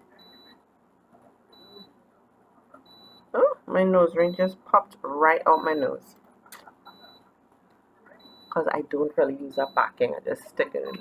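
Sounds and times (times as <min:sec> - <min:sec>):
faint electronic beep: 0:00.0 - 0:00.6, 0:01.5 - 0:02.0, 0:02.8 - 0:03.4, 0:06.8 - 0:07.3, 0:08.2 - 0:08.6, 0:10.7 - 0:11.0.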